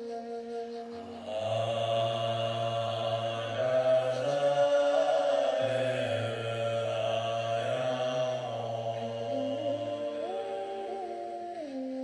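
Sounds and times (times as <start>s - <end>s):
low undertone: 0.7s - 11.7s
man chanting: 0.8s - 11.8s.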